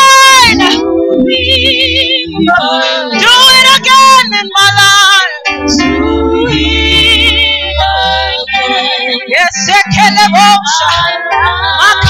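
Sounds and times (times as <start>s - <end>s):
women singing worship song: 0.0s - 12.0s
low sustained bass notes: 0.2s - 3.2s, 5.5s - 12.0s.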